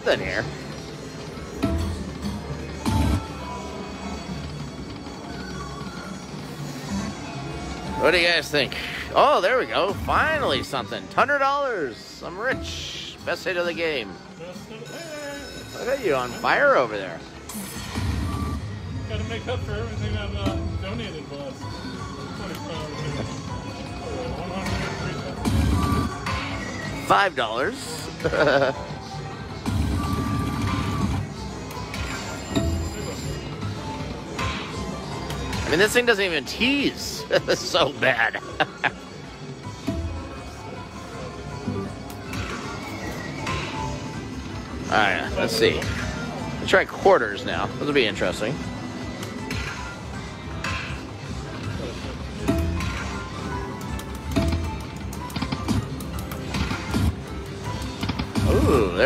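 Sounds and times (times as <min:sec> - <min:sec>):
slot machine game music: 0:00.0 - 0:59.0
slot machine spin sounds: 0:13.1 - 0:39.1, 0:47.8 - 0:59.0.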